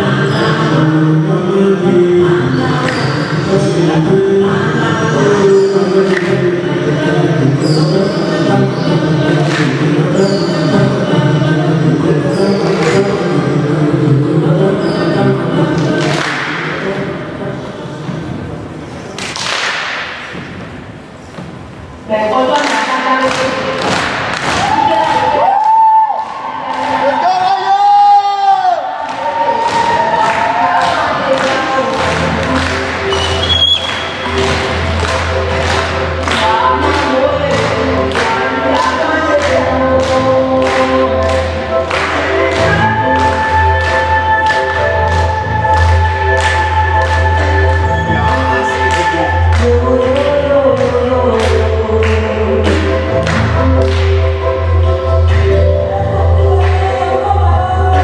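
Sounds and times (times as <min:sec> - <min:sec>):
group singing: 0:00.0 - 0:18.0, 0:34.2 - 0:53.7
deep bass line: 0:34.2 - 0:38.2, 0:44.6 - 0:58.0.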